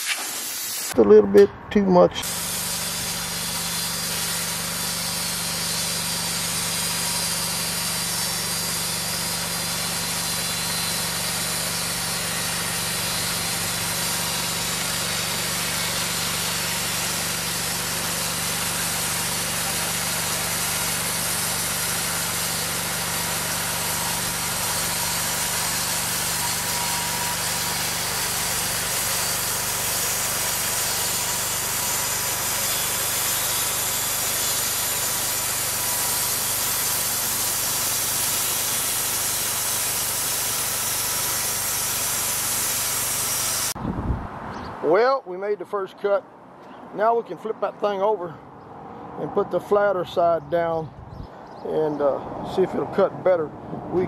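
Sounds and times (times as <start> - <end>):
band saw blade cutting log: 0.0 - 1.2, 2.2 - 43.8.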